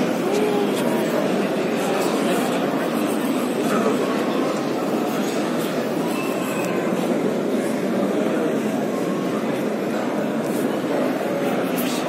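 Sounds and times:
crowd talking hubbub: 0.0s - 12.0s.

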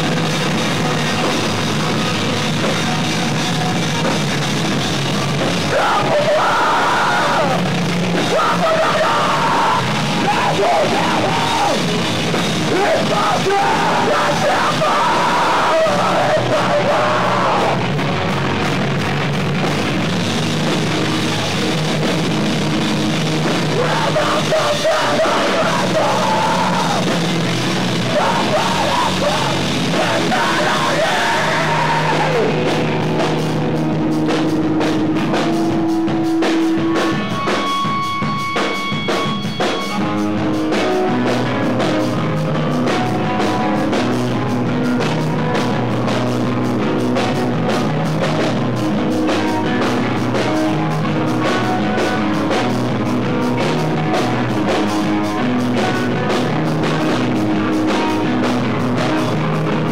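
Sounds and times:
distorted guitars: 0.0s - 59.9s
drums: 0.0s - 59.9s
screamed vocals: 5.7s - 11.9s, 12.7s - 17.9s, 23.7s - 27.1s, 28.0s - 32.6s.

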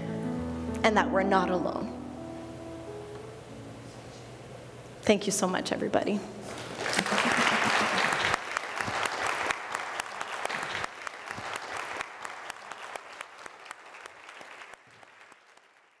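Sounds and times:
audience applauding: 6.6s - 16.0s.

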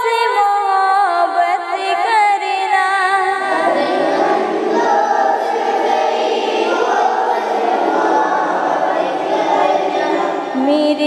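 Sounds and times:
voices singing in chorus: 1.2s - 11.0s.

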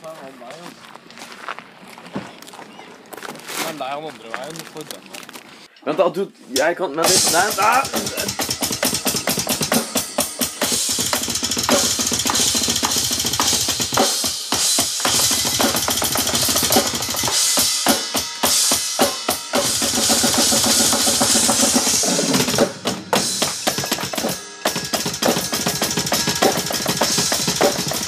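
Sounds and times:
footsteps on gravel: 0.0s - 5.7s
person's voice: 5.8s - 8.4s
rapid bass drum strokes: 7.0s - 28.0s
snare drum hits: 7.1s - 28.0s.

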